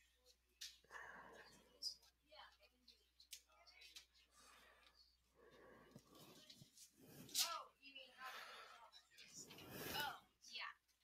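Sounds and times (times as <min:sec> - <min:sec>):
distant students talking quietly: 0:00.0 - 0:11.0.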